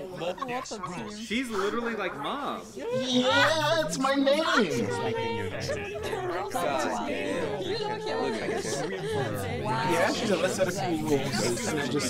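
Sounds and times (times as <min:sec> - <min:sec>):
overlapping voices talking: 0:00.0 - 0:12.0.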